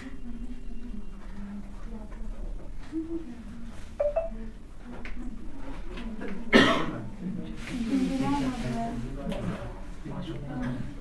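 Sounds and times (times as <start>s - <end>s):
loud cough: 6.5s - 7.0s.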